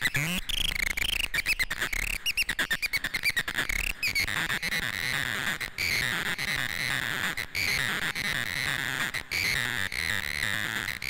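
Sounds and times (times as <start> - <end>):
chirping electronic blips: 0.0 - 4.8.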